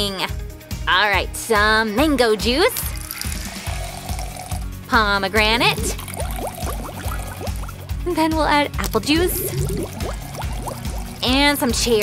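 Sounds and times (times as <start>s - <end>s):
background music: 0.0s - 12.0s
juice trickling into a glass: 2.9s - 4.7s, 5.8s - 7.9s, 9.2s - 11.3s.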